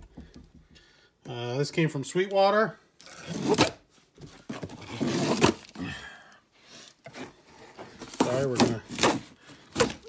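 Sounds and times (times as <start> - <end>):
cardboard box rustling and scraping: 4.2 - 5.7, 7.0 - 10.0.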